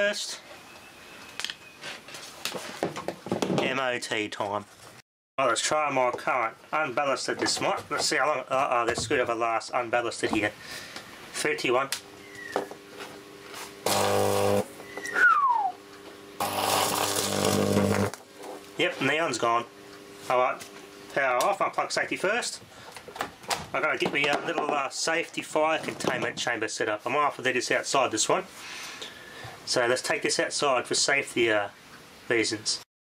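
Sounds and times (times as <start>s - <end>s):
faint transformer hum: 3.6s - 32.8s
electrical arc buzzing: 12.9s - 14.8s, 16.0s - 21.4s
falling whistle: 14.8s - 15.8s.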